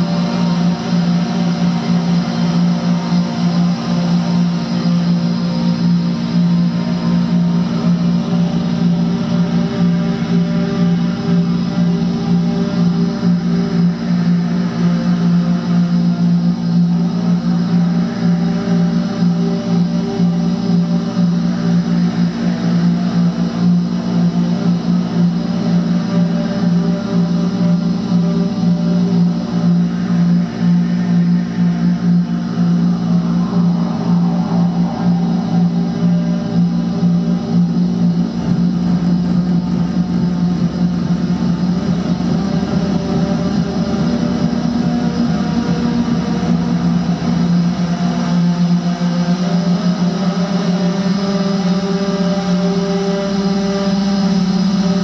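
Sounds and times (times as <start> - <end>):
electric guitar drone: 0.0 - 55.0
grainy flickering texture: 0.0 - 55.0.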